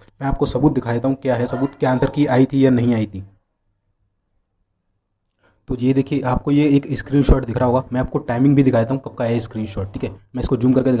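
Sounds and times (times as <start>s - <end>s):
man speaking: 0.1s - 3.4s, 5.7s - 11.0s.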